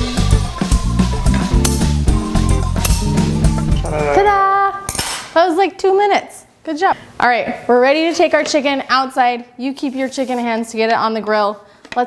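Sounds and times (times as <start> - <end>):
rock music: 0.0 - 4.3
short vocal sounds: 3.0 - 4.5.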